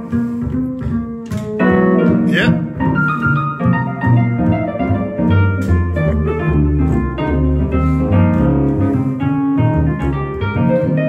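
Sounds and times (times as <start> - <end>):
plucked double bass: 0.0 - 11.0
keyboard chords and melody: 0.8 - 11.0.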